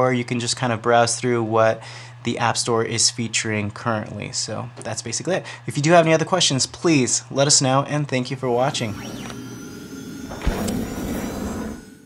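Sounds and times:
noisy tail: 8.3s - 12.0s
whoosh: 8.4s - 12.0s.

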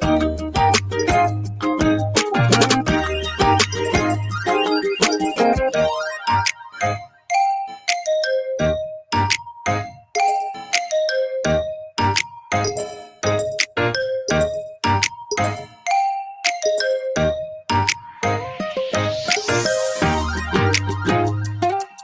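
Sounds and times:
upbeat game music: 0.0s - 22.0s.

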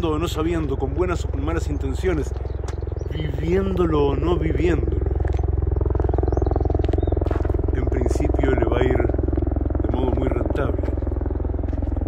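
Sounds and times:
low pulsing mechanical drone: 0.0s - 12.0s.

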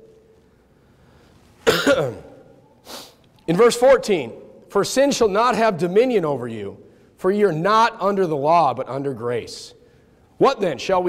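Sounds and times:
man coughing: 1.6s - 2.5s.

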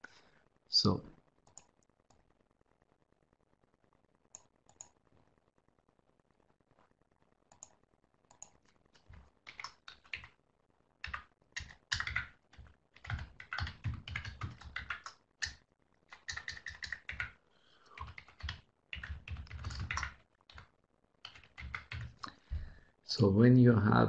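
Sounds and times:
typing on computer keyboard: 7.5s - 10.3s, 11.0s - 22.3s.

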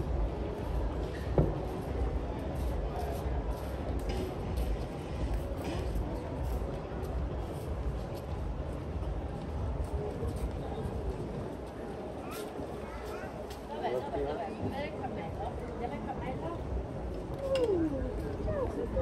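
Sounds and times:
faint voices of passers-by: 0.0s - 19.0s.

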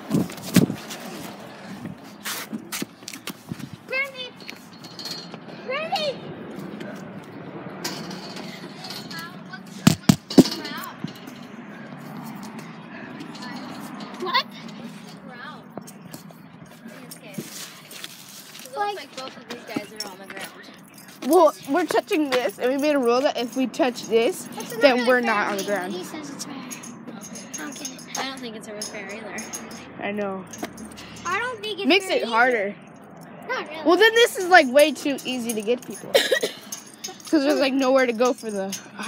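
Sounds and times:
phone microphone handling knocks: 9.9s - 10.5s.

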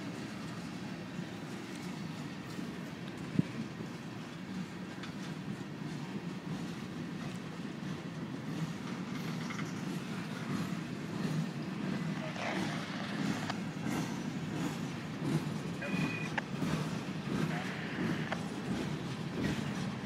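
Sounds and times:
train wheels rumbling on track: 0.0s - 20.0s
sharp clicks and knocks: 16.1s - 18.5s.

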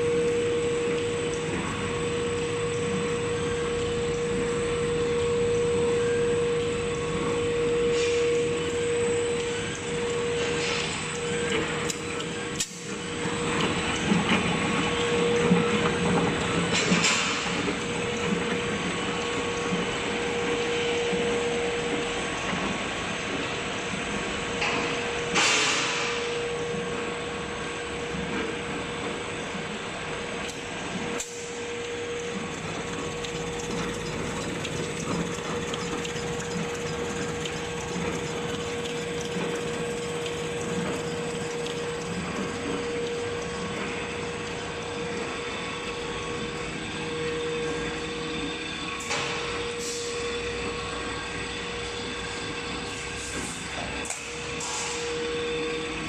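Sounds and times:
paper machine whirring: 32.3s - 44.2s.

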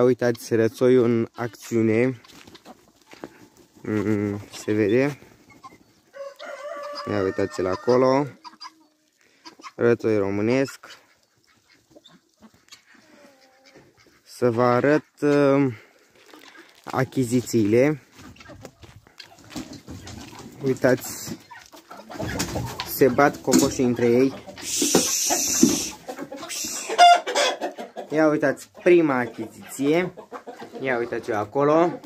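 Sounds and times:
chickens clucking: 0.0s - 32.0s
chicken squawk: 5.4s - 9.8s, 10.8s - 14.3s, 21.5s - 31.0s
farm animal drawn-out call: 24.1s - 27.9s.

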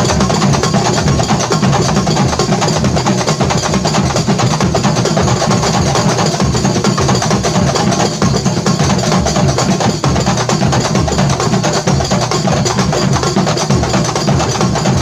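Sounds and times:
deep barrel drum beats: 0.0s - 15.0s
frame drums struck by hand: 0.0s - 15.0s.

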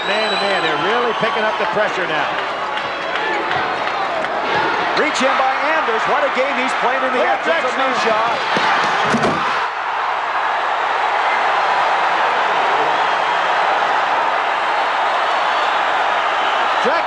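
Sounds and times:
arena crowd cheering: 0.0s - 17.0s
sharp knocks: 8.5s - 9.5s.

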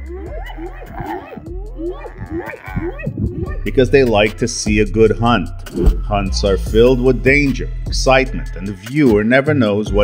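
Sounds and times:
animal cries: 0.0s - 3.7s.

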